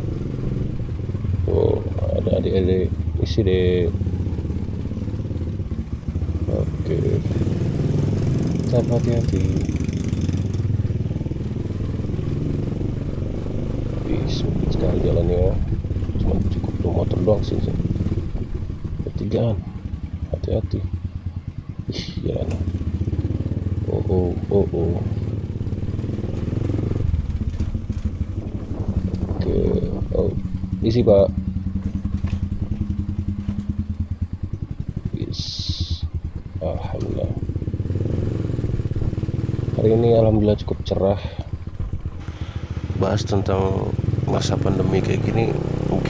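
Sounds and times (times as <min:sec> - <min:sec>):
motor scooter engine running: 0:00.0 - 0:40.6, 0:41.4 - 0:46.0.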